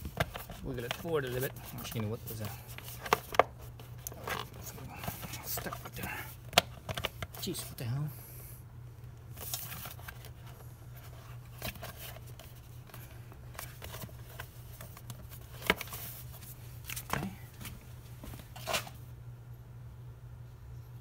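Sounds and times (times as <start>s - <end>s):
plastic cover scraping and clicking: 0.0s - 7.6s
steady low hum: 0.0s - 21.0s.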